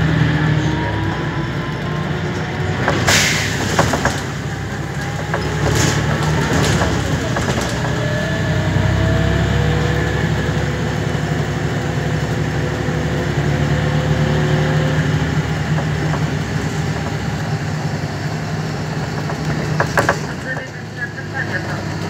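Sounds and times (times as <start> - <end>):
diesel bus engine drone: 0.0 - 22.0
clicks and rattles: 2.8 - 8.6, 15.4 - 17.6, 18.6 - 20.9.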